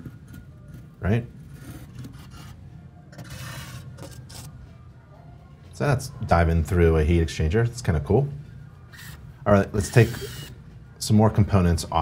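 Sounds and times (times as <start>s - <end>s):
camera scraping sheet metal: 1.5s - 4.6s.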